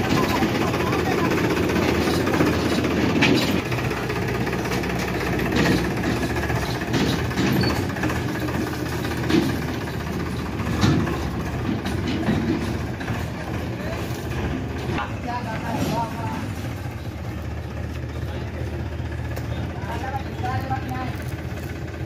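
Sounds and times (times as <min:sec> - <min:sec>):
tractor diesel engine running: 0:00.0 - 0:22.0
trolley and hitch knocks: 0:01.7 - 0:03.7, 0:04.6 - 0:15.0.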